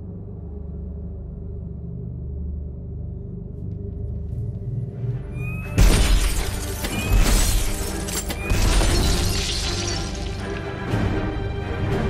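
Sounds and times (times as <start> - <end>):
orchestral music: 5.2 - 12.0
glass shattering: 5.8 - 10.6.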